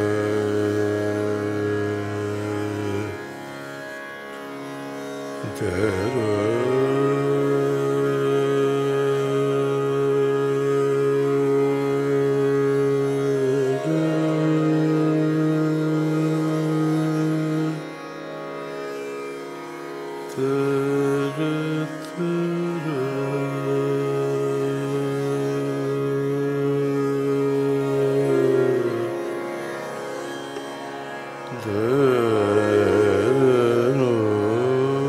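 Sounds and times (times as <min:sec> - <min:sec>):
man singing long note: 0:00.0 - 0:03.2, 0:05.4 - 0:17.8, 0:20.3 - 0:29.4, 0:31.5 - 0:35.0
tanpura drone: 0:00.0 - 0:35.0
long held vocal note: 0:20.3 - 0:29.9.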